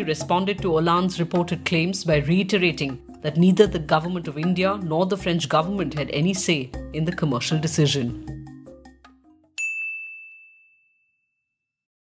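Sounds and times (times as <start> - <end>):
background music: 0.0 - 9.6.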